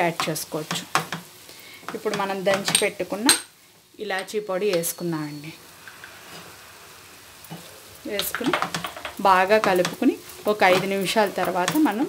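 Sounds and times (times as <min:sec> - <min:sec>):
faint sizzle in a pan: 0:00.0 - 0:12.0
wooden spatula stirring and scraping: 0:07.5 - 0:12.0.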